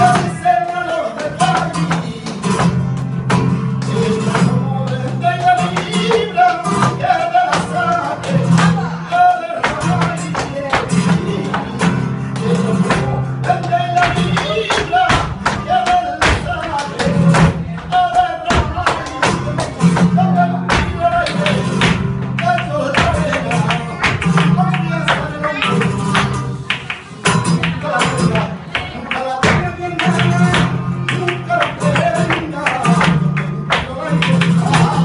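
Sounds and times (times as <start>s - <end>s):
hand clapping: 0.0s - 8.9s, 9.6s - 35.0s
flamenco guitar playing: 0.0s - 35.0s
percussive strikes: 9.6s - 25.3s.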